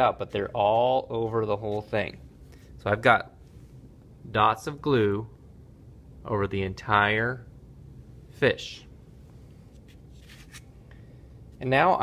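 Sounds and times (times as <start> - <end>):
paper rustling: 9.7 - 10.7.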